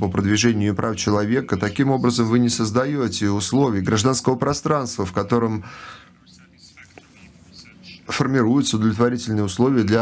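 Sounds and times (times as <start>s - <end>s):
interpreter's voice: 0.0s - 10.0s
man talking into microphone: 0.0s - 10.0s.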